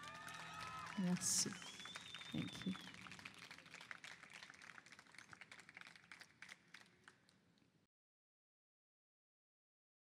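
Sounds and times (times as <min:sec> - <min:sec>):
audience applause: 0:00.0 - 0:07.2.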